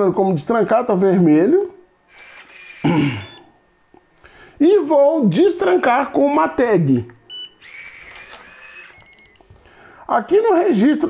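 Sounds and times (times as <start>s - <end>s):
smart lock motor whirring: 2.1s - 3.5s, 7.3s - 9.5s.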